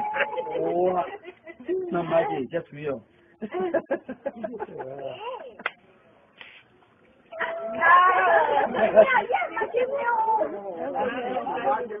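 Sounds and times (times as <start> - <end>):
people laughing: 0.0 - 2.2, 3.4 - 5.7, 8.1 - 9.5
people talking over one another: 7.3 - 12.0.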